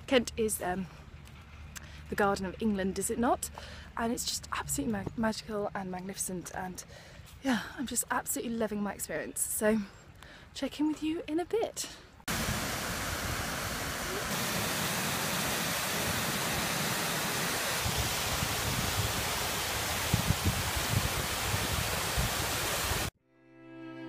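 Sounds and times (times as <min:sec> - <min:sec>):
water rushing down rocky cascade: 0:12.3 - 0:23.1
bowed string music with cello: 0:23.2 - 0:24.0.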